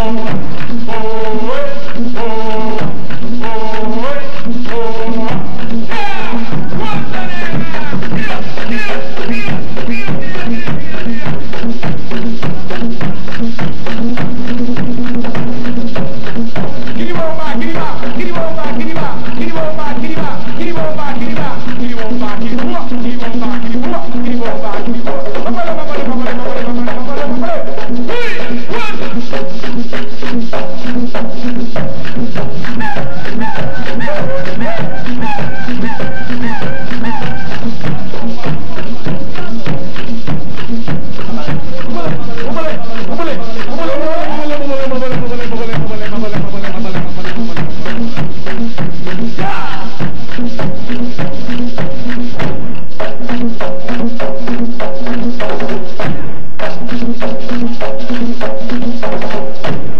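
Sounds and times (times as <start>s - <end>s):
repeated melodic phrase: 0.0s - 56.5s
hand drums playing fast rhythm: 0.0s - 59.9s.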